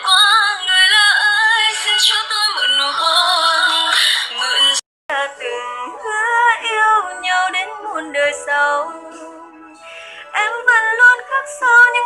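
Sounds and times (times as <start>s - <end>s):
processed female vocal song: 0.0s - 12.0s.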